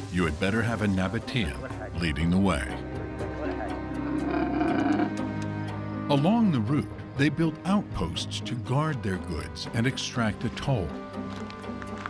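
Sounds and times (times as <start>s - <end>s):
background music: 0.0s - 12.0s
camel's throaty call: 3.8s - 5.3s.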